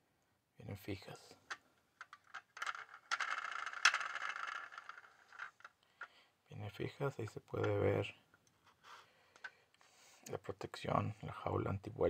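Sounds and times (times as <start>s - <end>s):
toy car scraping and rattling: 2.0s - 5.7s.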